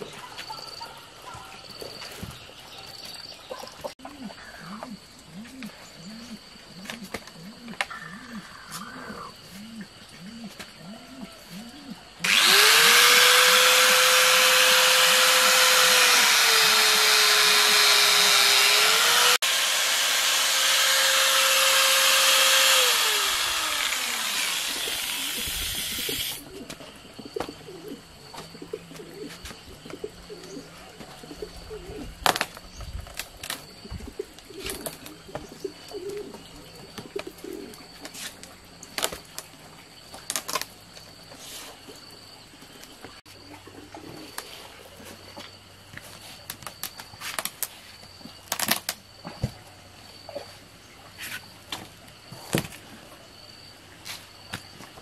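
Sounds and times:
power tool cutting rubber tire: 12.2 - 26.4.

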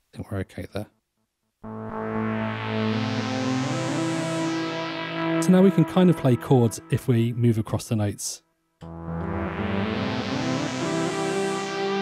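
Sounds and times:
synthesizer held tone with delay: 1.6 - 7.2, 8.8 - 12.0.

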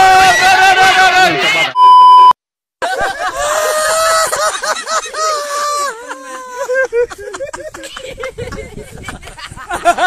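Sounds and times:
loud electronic beep: 1.8 - 2.4.

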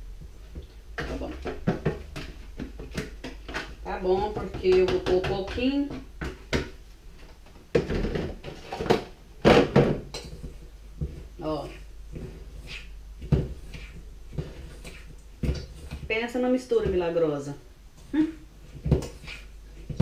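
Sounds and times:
spoon scraping metal bowl: 10.1 - 16.1, 18.8 - 19.5.

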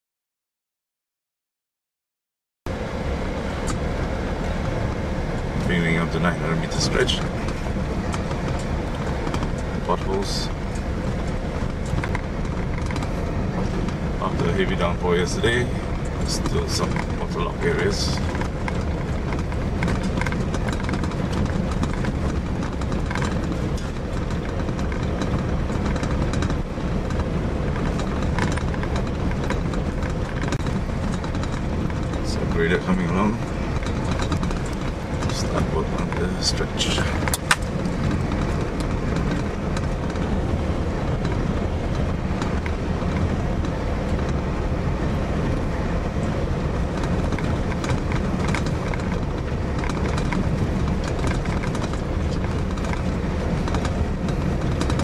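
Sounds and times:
vehicle rumbling over gravel road: 2.7 - 55.0
rattles from bumpy surface: 3.6 - 55.0.

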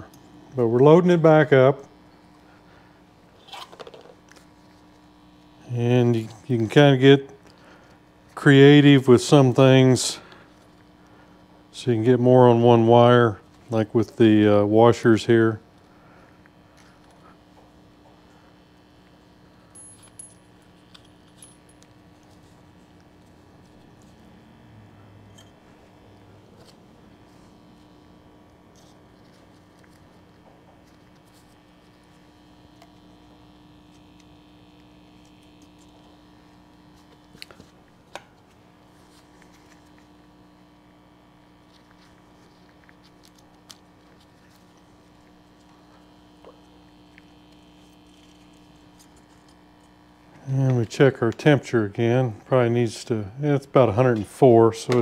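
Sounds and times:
faint steady hum: 0.0 - 55.0
small metal parts clinking: 19.7 - 21.8.

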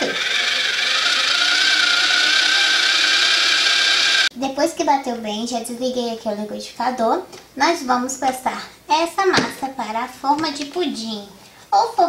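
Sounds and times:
toy blender motor whine: 0.0 - 4.3.

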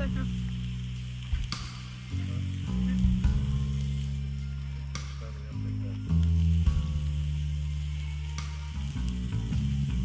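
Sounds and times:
sustained low chords music: 0.0 - 10.0
wood fire crackling: 0.0 - 10.0.

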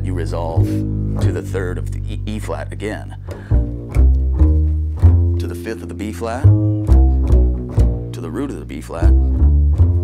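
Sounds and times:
double bass plucked: 0.0 - 10.0.

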